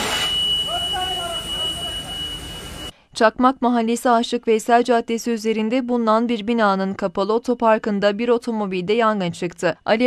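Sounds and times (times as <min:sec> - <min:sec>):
fire alarm high-pitched tone: 0:00.0 - 0:02.9
men talking: 0:00.7 - 0:02.3.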